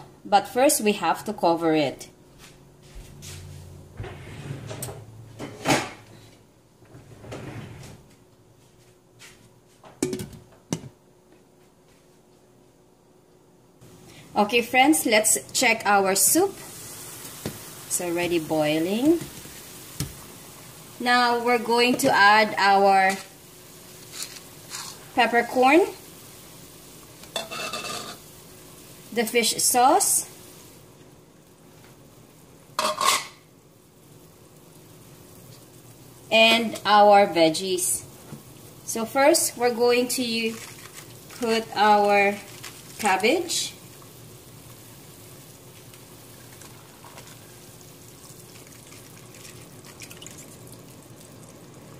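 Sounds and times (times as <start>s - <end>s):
broth bubbling in pot: 15.4s - 32.8s, 33.4s - 51.9s.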